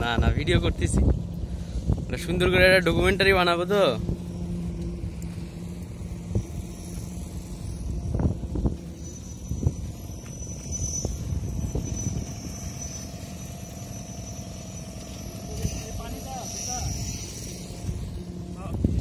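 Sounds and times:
people talking: 0:00.0 - 0:01.1, 0:02.1 - 0:04.0, 0:15.4 - 0:17.2
high whine: 0:00.0 - 0:19.0
low engine hum: 0:00.0 - 0:19.0.

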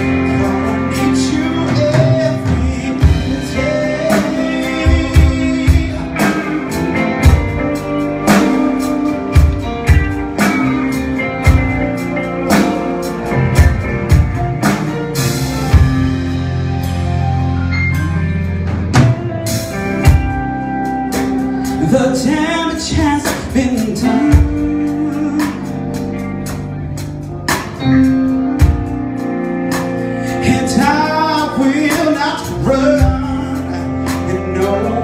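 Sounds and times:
drum kit: 0:00.0 - 0:35.0
electric guitars: 0:00.0 - 0:35.0
keyboard chords: 0:00.0 - 0:35.0
live rock band playing: 0:00.0 - 0:35.0.

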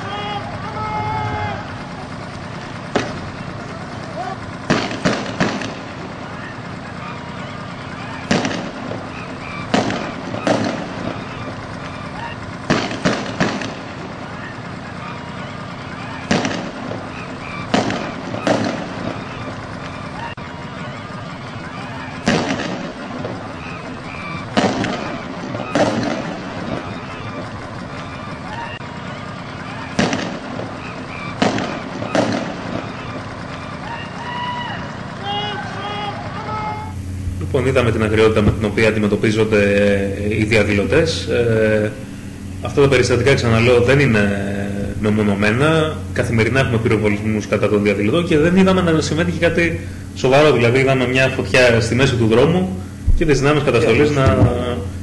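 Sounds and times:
street noise: 0:00.0 - 0:55.0
voices: 0:00.0 - 0:55.0
shotgun blasts: 0:04.6 - 0:06.1, 0:08.2 - 0:11.4, 0:12.6 - 0:14.5, 0:16.2 - 0:19.4, 0:22.2 - 0:23.8, 0:24.5 - 0:27.0, 0:29.8 - 0:33.2.

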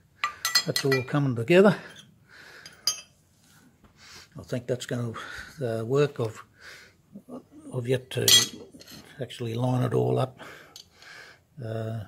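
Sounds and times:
metallic clink: 0:00.2 - 0:01.1, 0:02.6 - 0:03.1, 0:08.3 - 0:09.0.

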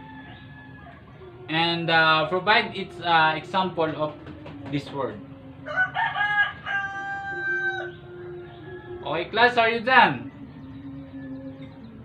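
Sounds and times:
rooster crowing: 0:00.0 - 0:01.3, 0:05.6 - 0:09.6.

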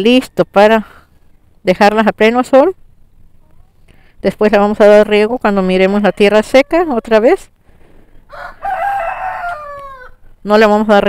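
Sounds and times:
rooster crowing: 0:08.3 - 0:10.2.

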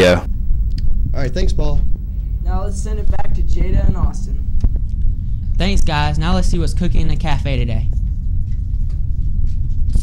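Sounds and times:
low rumble: 0:00.2 - 0:10.0.

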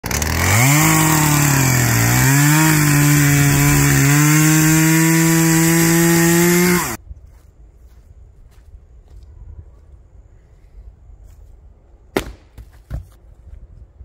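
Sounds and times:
chainsaw cutting log: 0:00.0 - 0:07.0.

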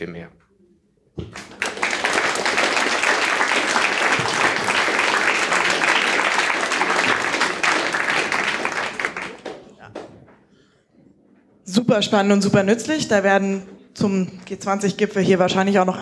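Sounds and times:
audience applauding: 0:01.2 - 0:10.3.

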